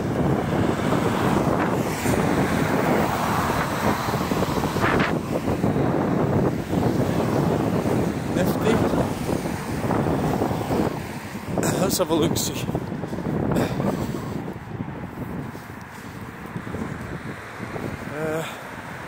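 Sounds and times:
cars driving past: 0.0 - 19.0
wind buffeting microphone: 0.0 - 19.0.

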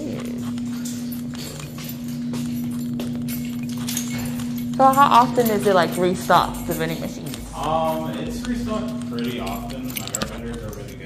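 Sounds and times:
footsteps on hard floor: 0.0 - 11.0
steady low hum: 0.0 - 11.0.

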